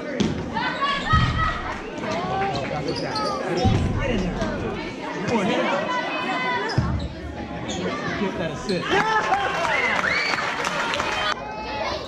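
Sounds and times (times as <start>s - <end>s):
heavy thuds: 3.6s - 4.9s.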